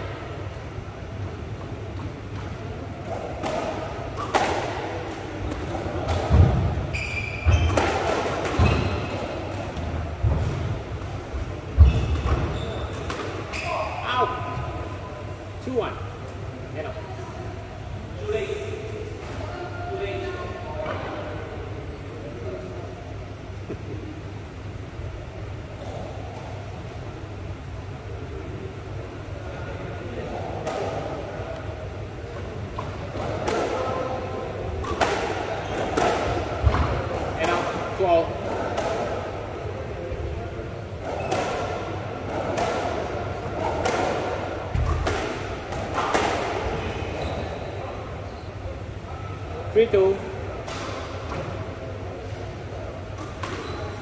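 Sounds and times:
squash ball hitting racquets and walls: 1.6s - 14.6s, 30.4s - 31.6s, 32.3s - 47.7s, 50.5s - 54.0s.

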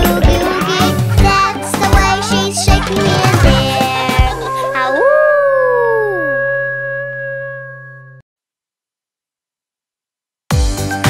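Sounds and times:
cartoon wolf howling: 4.4s - 8.2s.

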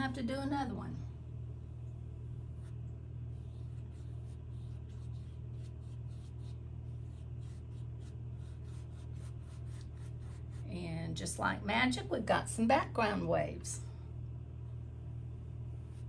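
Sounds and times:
steady low hum: 0.0s - 16.0s
paintbrush strokes on canvas: 2.4s - 10.8s, 15.8s - 16.0s.

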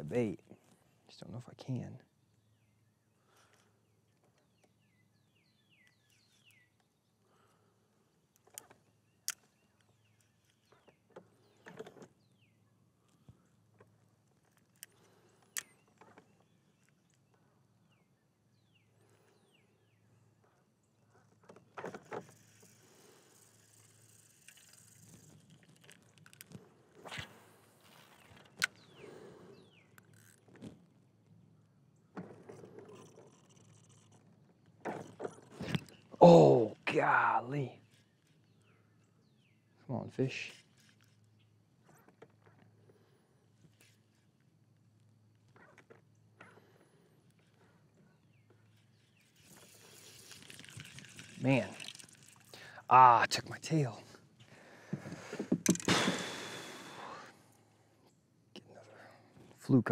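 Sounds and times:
soft rustling and scraping: 40.4s - 52.5s.

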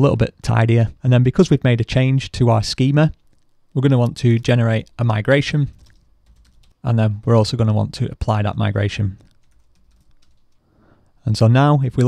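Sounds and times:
person speaking: 0.0s - 12.0s
faint keyboard typing: 3.1s - 7.5s, 8.8s - 11.2s.

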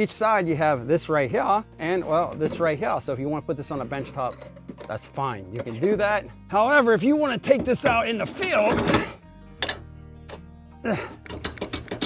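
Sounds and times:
background music: 0.0s - 12.0s
light metallic clinks of vise: 4.0s - 6.1s, 11.2s - 12.0s.

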